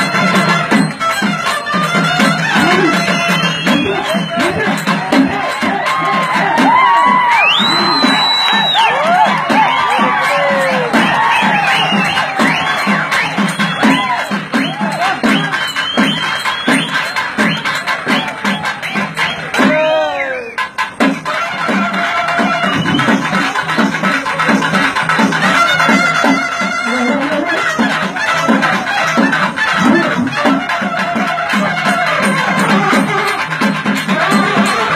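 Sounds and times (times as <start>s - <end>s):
reed pipe melody: 0.0s - 8.6s, 18.8s - 34.9s
drums beating: 0.0s - 34.9s.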